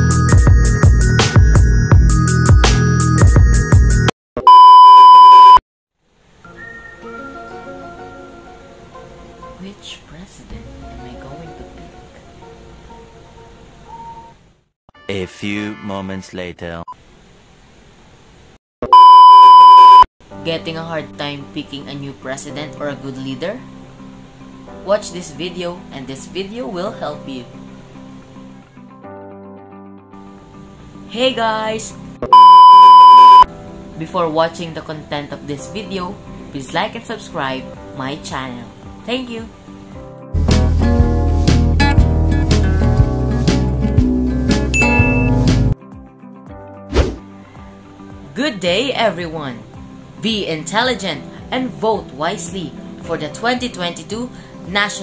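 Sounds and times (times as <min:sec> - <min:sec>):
high-pitched electronic beep: 0:32.3 - 0:33.5, 0:44.8 - 0:45.4.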